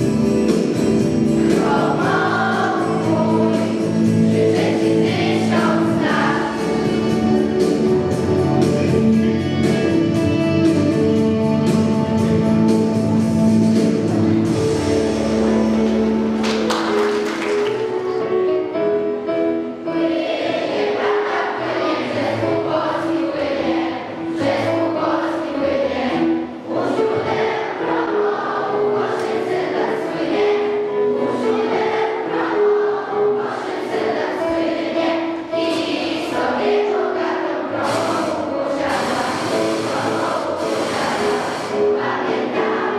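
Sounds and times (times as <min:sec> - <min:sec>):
children's choir singing: 0:00.0 - 0:42.9.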